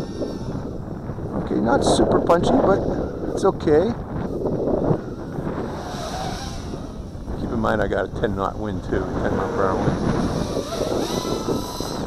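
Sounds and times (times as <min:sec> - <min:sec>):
quadcopter motors whining: 0:00.0 - 0:12.0
wind buffeting microphone: 0:00.0 - 0:12.0.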